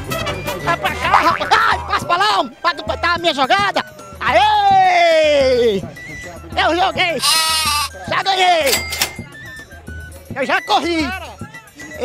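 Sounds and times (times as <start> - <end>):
goat bleating: 7.2 - 8.0.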